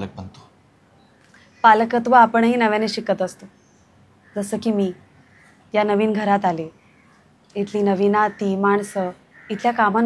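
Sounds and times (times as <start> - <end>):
woman speaking: 1.6 - 3.5, 4.4 - 5.1, 5.7 - 6.7, 7.5 - 10.0.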